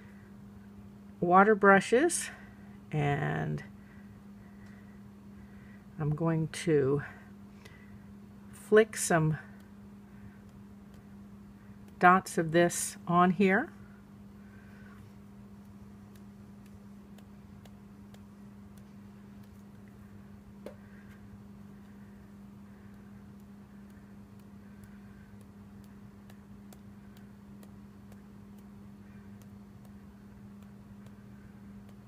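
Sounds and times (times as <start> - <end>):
steady low hum: 0.0 - 32.0
brush bristles flicking ticks: 9.0 - 12.9, 14.5 - 32.0.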